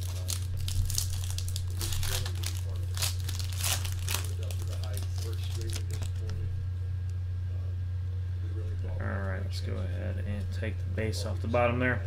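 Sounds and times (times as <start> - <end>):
plastic wrap crinkling and tearing: 0.0 - 6.4
steady low hum: 0.0 - 12.0.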